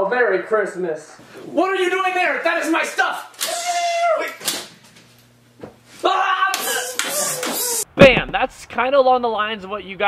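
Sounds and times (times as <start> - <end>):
person yelling loudly: 3.4 - 4.4, 6.0 - 7.8.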